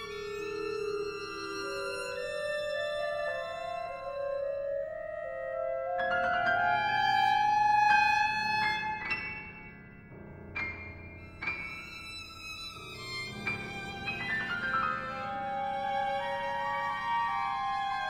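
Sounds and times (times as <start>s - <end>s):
chamber ensemble music: 0.0s - 18.0s.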